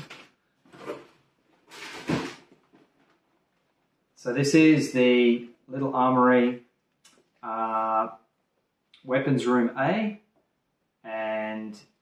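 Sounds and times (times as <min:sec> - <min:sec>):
cardboard scraping and rustling: 0:00.0 - 0:03.0
thump: 0:01.8 - 0:02.4.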